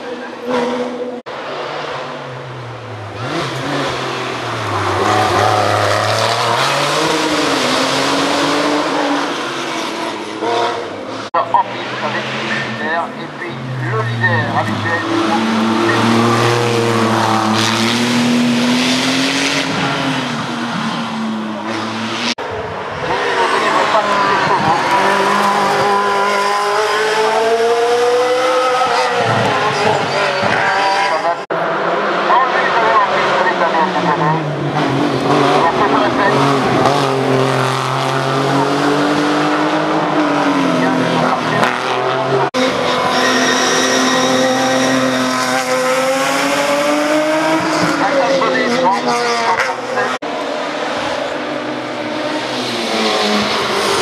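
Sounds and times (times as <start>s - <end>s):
race car engines braking and accelerating: 0.0s - 54.0s.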